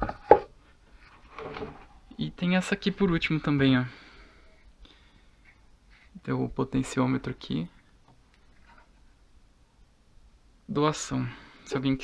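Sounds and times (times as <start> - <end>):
wood knocking on wood: 0.0 - 0.5.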